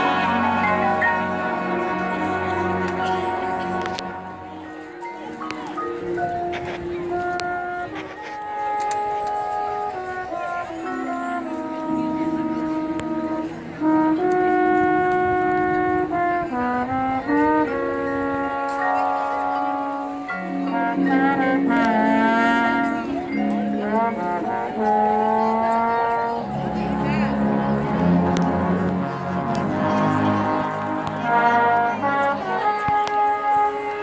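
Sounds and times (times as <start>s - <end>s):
brass band playing sustained chords: 0.0s - 34.0s.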